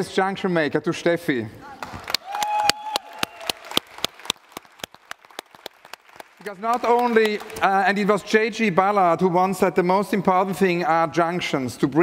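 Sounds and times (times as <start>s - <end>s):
audience applause: 1.8s - 8.0s.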